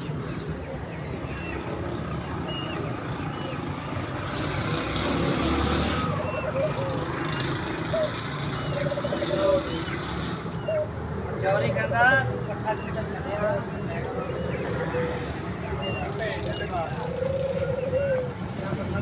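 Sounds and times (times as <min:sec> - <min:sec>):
birds calling: 0:00.0 - 0:19.0
birds chirping: 0:00.0 - 0:19.0.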